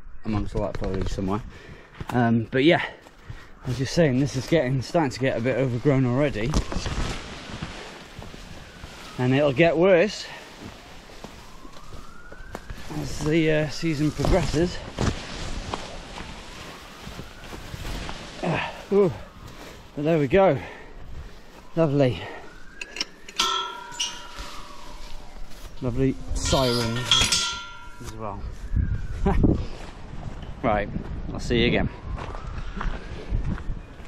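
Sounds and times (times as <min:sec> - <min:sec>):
leaves and stems rustling: 0:03.6 - 0:22.8, 0:23.4 - 0:28.8
siren wailing: 0:03.6 - 0:34.0
sharp clink: 0:23.3 - 0:24.7, 0:26.4 - 0:28.2
wind noise on microphone: 0:23.4 - 0:34.0.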